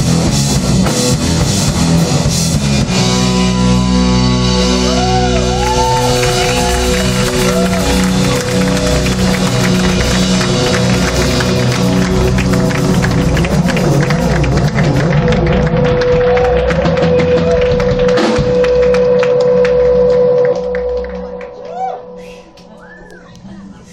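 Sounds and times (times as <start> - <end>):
drums with cymbals: 0.0 - 3.4
electric bass notes: 0.0 - 23.9
fuzz electric guitar glides: 0.0 - 23.9.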